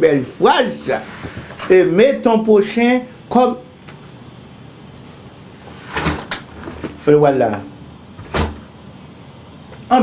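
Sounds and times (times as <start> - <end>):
glass door closing and latching: 5.9 - 6.8, 8.2 - 8.6.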